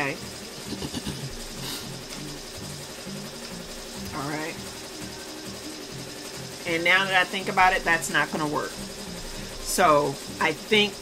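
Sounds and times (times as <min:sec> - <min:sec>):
embroidery machine whirring: 0:00.0 - 0:11.0.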